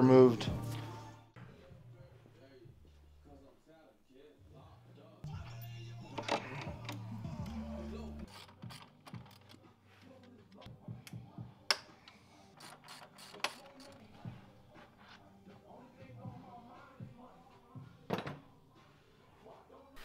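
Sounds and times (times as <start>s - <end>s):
hand ratchet clicking: 8.3s - 9.6s, 12.6s - 14.0s.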